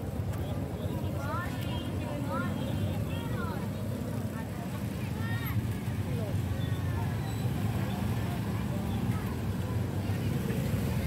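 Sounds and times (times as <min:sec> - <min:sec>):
crowd voices: 0:00.0 - 0:11.0
motorcycle engines rumbling: 0:00.0 - 0:11.0.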